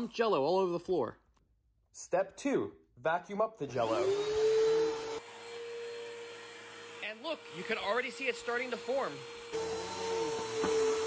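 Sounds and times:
vacuum cleaner motor whine: 3.8 - 11.0.

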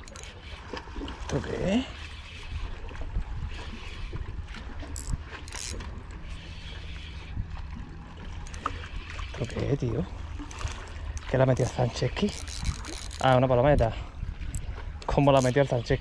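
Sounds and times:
fishing reel being cranked: 0.0 - 0.6, 3.4 - 7.4, 8.4 - 16.0
wind buffeting microphone: 0.8 - 16.0.

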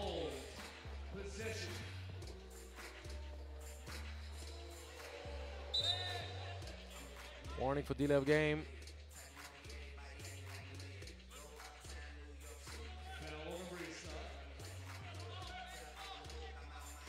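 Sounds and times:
faint music over sound system: 0.0 - 17.0.

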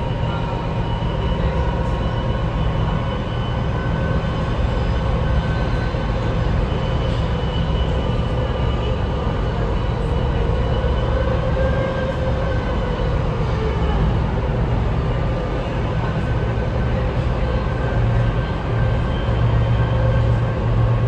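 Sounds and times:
train rumble: 0.0 - 21.0.

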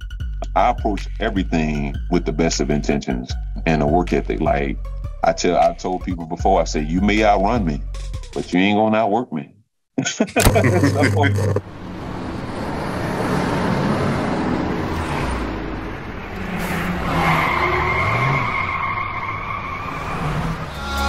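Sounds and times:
person laughing: 10.0 - 11.6
car engine and road noise: 10.4 - 21.0.

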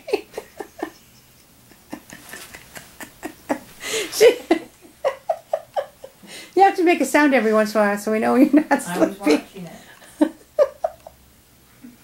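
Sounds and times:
woman laughing softly: 0.0 - 6.4, 8.9 - 11.2.

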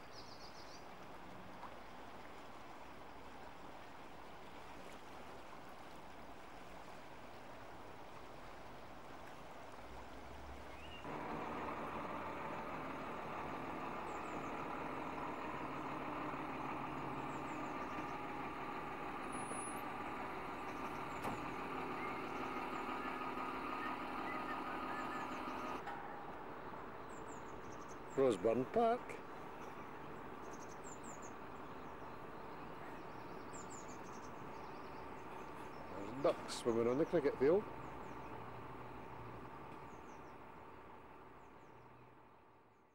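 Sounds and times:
floodwater rushing: 0.8 - 27.0
bird chirps: 10.7 - 11.1, 20.6 - 25.8
engine idling: 11.0 - 26.4.

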